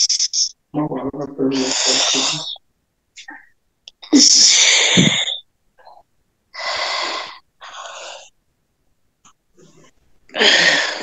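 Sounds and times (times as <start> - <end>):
person blowing out hissing breaths: 4.2 - 5.4, 6.6 - 8.3, 10.4 - 11.0.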